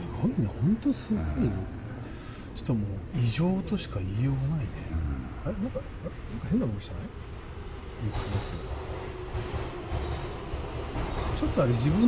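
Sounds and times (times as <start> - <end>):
faint hum: 0.0 - 10.4
low city rumble: 0.0 - 12.0.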